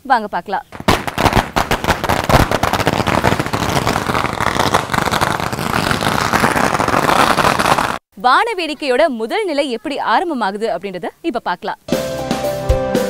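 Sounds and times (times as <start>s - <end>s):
firecrackers crackling: 0.6s - 8.0s.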